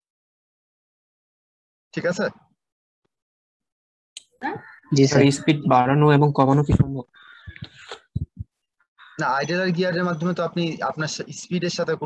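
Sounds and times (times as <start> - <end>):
faint harsh bird call: 9.0 - 10.2.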